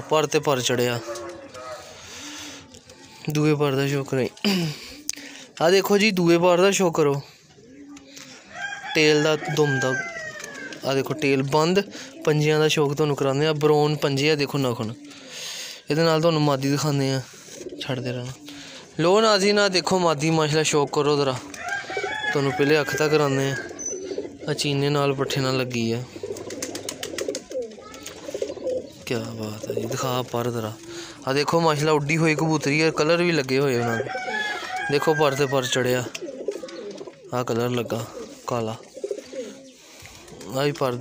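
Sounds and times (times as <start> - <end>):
man speaking: 0.0 - 2.0, 3.2 - 7.4, 10.8 - 15.0, 15.8 - 21.5, 22.2 - 23.7, 24.4 - 26.2, 29.0 - 34.2, 34.9 - 36.2, 37.3 - 38.9, 40.4 - 41.0
pigeons cooing: 0.0 - 41.0
distant rooster crowing: 0.8 - 2.0, 8.4 - 10.9, 21.5 - 23.8, 33.6 - 36.0
faint bird calls: 23.5 - 24.6, 33.8 - 40.5.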